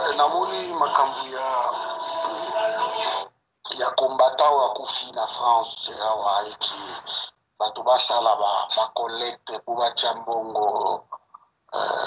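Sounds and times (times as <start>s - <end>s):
person speaking over video call: 0.0s - 12.0s.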